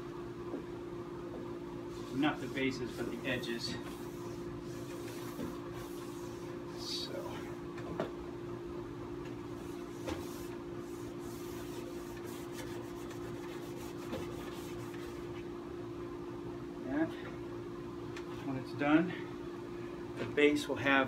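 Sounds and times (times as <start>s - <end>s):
steady low hum: 0.0s - 21.0s
pad scrubbing a ski: 2.0s - 6.4s.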